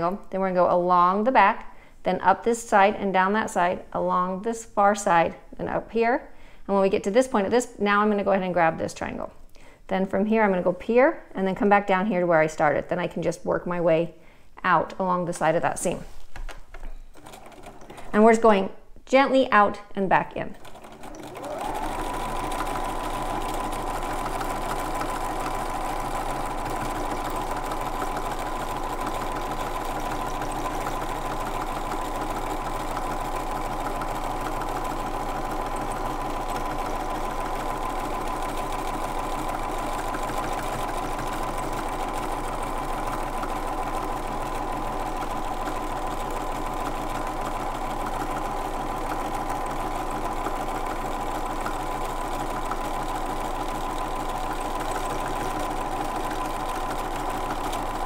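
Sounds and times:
sewing machine stitching: 17.1 - 18.4, 20.5 - 58.0.

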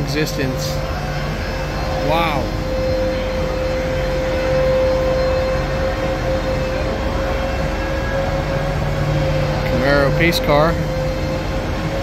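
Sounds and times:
constant mid-pitched whine: 0.0 - 12.0
steady mechanical drone: 0.0 - 12.0.

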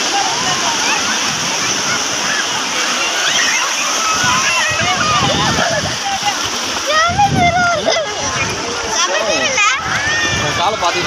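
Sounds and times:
people's voices: 0.0 - 11.0
sea surf splashing: 0.0 - 11.0.

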